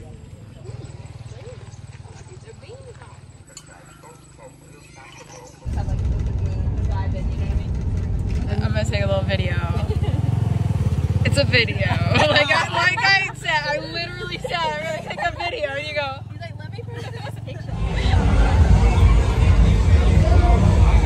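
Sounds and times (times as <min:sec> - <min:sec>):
motorbike engine running loudly: 0:00.0 - 0:03.5, 0:05.6 - 0:14.4, 0:16.1 - 0:21.0
voices: 0:00.0 - 0:21.0
low hum: 0:05.6 - 0:11.5, 0:17.7 - 0:21.0.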